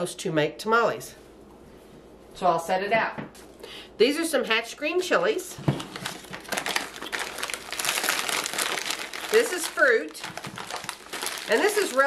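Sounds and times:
plastic bags crinkling: 5.6s - 12.0s.

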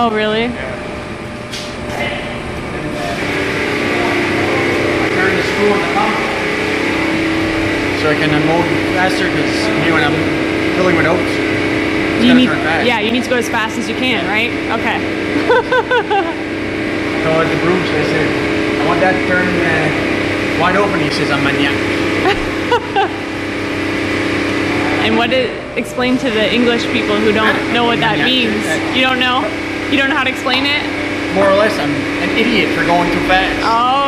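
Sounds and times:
small engine running steadily: 0.0s - 34.0s
steady motor hum: 0.0s - 34.0s
person laughing: 12.2s - 12.6s, 15.4s - 16.4s, 22.2s - 23.3s.

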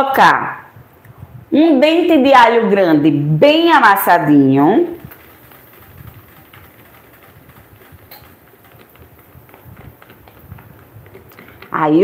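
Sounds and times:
spatula handling: 5.0s - 12.0s.

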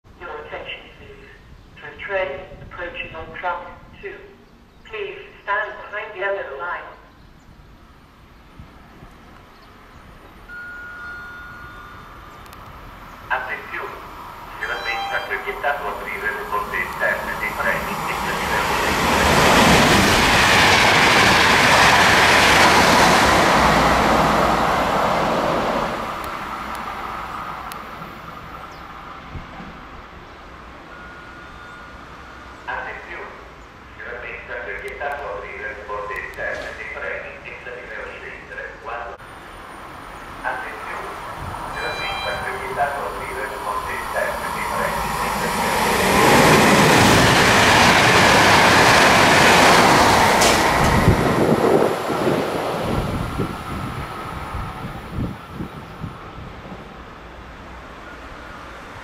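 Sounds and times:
train wheels rumbling on rails: 15.7s - 30.0s, 39.6s - 57.4s.

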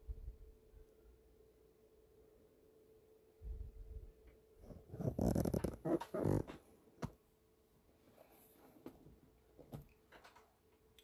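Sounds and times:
rubbing against microphone: 4.6s - 6.6s.

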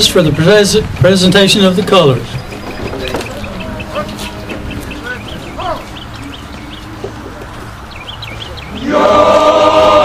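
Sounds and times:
bird chirping: 0.0s - 9.0s.

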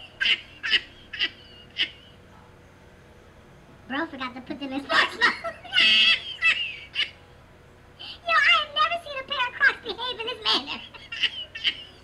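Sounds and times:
man laughing: 4.8s - 7.2s, 10.2s - 12.0s.

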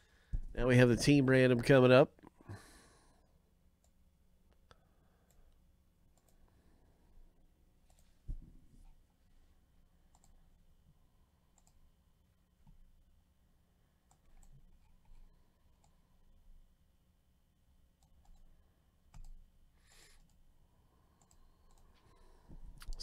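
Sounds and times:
low room hum: 0.0s - 23.0s
computer mouse clicks: 3.8s - 6.5s, 10.1s - 10.4s, 11.5s - 11.8s, 14.1s - 16.0s, 18.0s - 18.5s, 19.1s - 19.4s, 20.2s - 20.4s, 21.2s - 22.0s.

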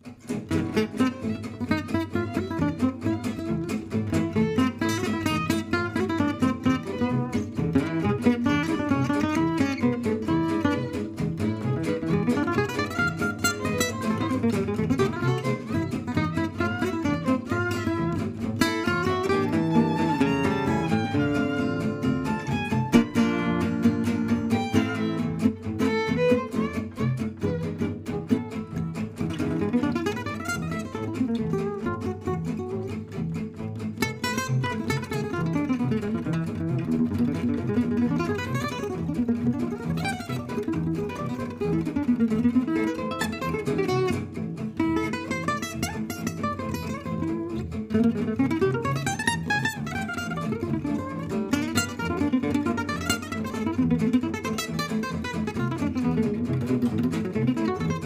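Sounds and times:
acoustic guitar runs: 0.0s - 58.0s
double bass accompaniment: 0.3s - 58.0s.

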